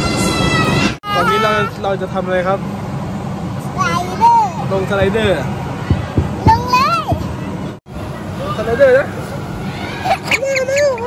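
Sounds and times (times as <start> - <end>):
excited voices: 9.7 - 11.0.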